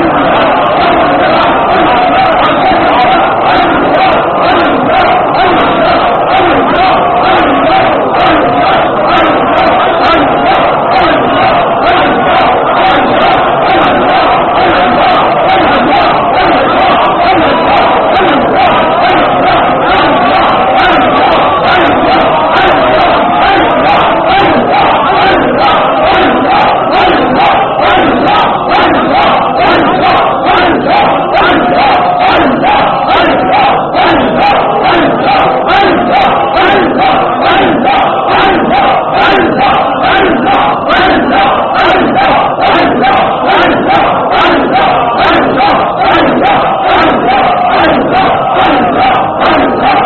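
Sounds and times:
men chanting in unison: 0:00.0 - 0:50.0.

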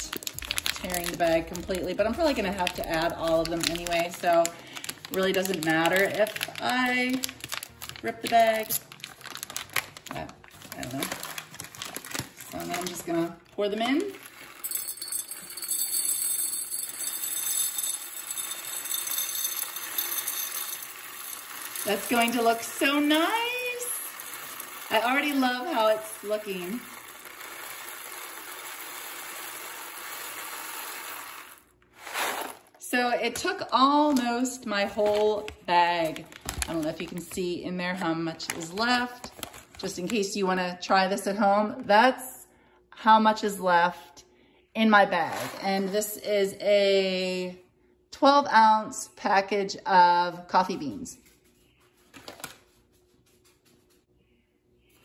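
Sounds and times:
coffee beans pouring into glass jar: 0:00.0 - 0:10.1, 0:14.0 - 0:32.8.

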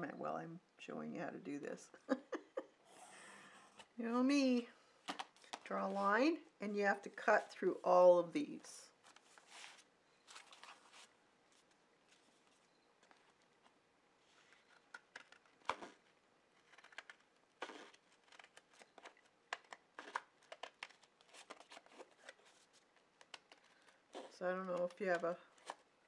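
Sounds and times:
paper rustling: 0:09.0 - 0:25.8.

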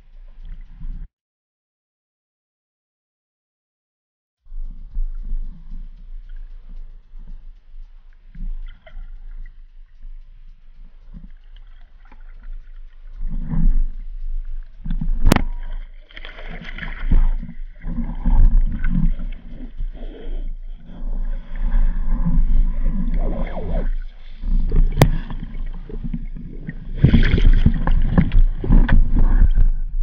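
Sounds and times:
underwater swishing water: 0:00.0 - 0:01.1, 0:04.5 - 0:30.0
sharp clicks: 0:04.5 - 0:30.0.

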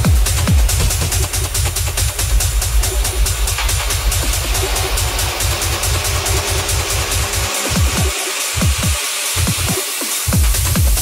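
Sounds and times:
hissing hi-hats: 0:00.0 - 0:11.0
rolling techno bass line: 0:00.0 - 0:11.0.

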